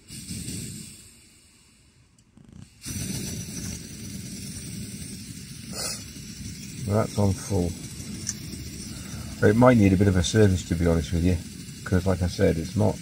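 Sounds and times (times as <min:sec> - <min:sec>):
stove burner hissing: 0:00.0 - 0:13.0.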